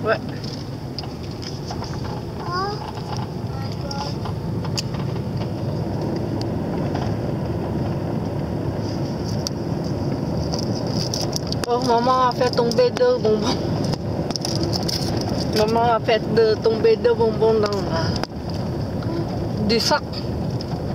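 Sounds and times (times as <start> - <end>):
engine and tyres rumbling: 0.0 - 20.9.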